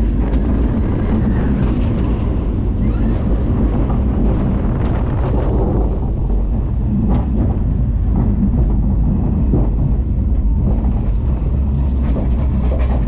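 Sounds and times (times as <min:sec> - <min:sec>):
roller coaster rumbling on track: 0:00.0 - 0:13.0
roller coaster wheel clacks: 0:00.0 - 0:13.0.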